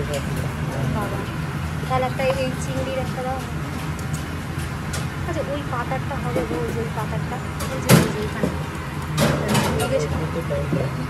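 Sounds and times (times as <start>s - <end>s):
background chatter: 0.0s - 11.0s
steady low hum: 0.0s - 11.0s.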